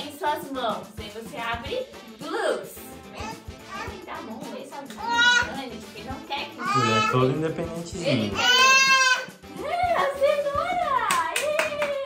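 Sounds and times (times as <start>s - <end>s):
hands clapping: 4.8s - 5.1s, 10.7s - 12.0s.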